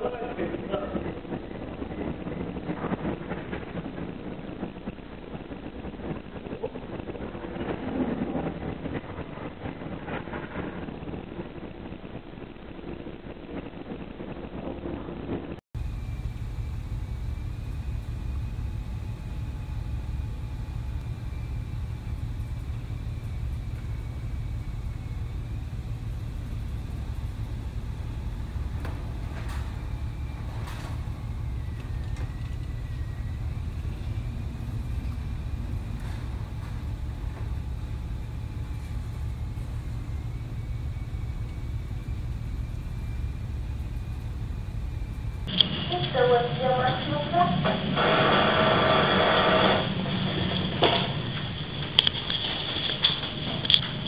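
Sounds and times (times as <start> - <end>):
low rumble: 0.0 - 54.0
wind: 0.0 - 54.0
faint wavering whistle: 15.8 - 45.5.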